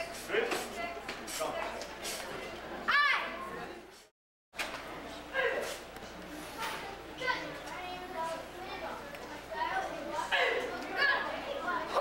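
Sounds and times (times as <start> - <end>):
chatter of children and adults: 0.0 - 12.0.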